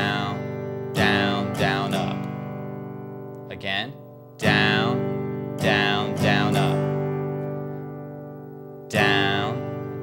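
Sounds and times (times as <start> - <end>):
acoustic guitar strummed chord: 0.0 - 10.0.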